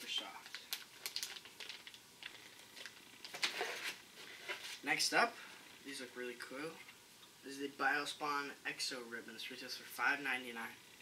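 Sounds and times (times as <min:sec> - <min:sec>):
plastic packaging crinkling: 0:00.0 - 0:04.8.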